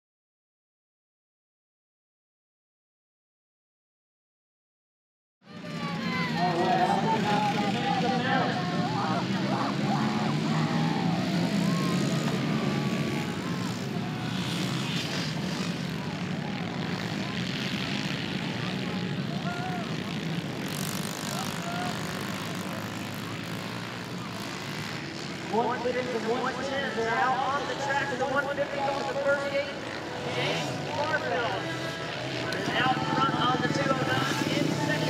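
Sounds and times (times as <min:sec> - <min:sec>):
dirt bikes revving and buzzing: 0:05.5 - 0:35.0.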